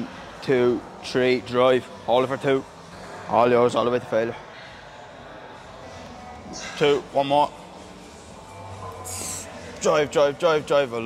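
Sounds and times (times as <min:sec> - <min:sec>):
gym room noise: 0:00.0 - 0:11.0.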